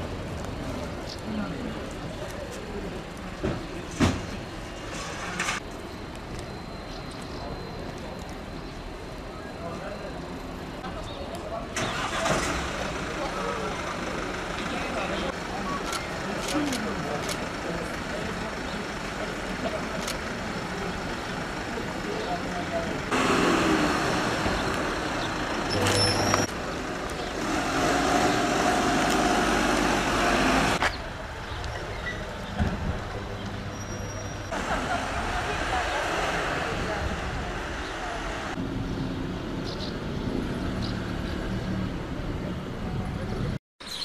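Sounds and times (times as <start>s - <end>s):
people's voices: 0.0s - 5.6s, 6.5s - 27.4s, 30.0s - 38.6s
van driving off: 11.8s - 30.8s, 32.4s - 39.0s.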